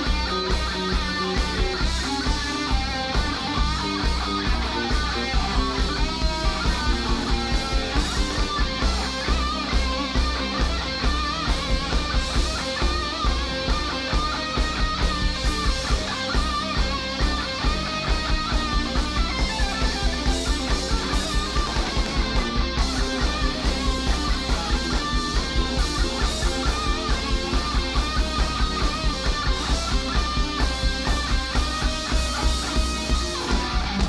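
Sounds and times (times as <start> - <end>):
bass guitar: 0.0 - 34.0
drum kit beat: 0.0 - 34.0
electric guitar: 0.0 - 34.0.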